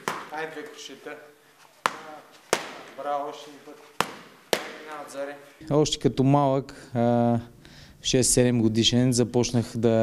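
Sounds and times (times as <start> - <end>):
glove punches slapping mitt: 0.0 - 0.8, 1.8 - 3.3, 3.9 - 5.1.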